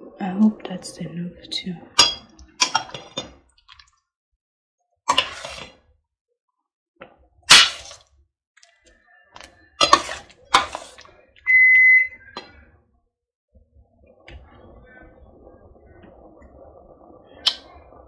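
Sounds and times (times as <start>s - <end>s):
metal spoon scraping a pot: 5.1s - 5.8s
high electronic beep: 11.5s - 12.2s.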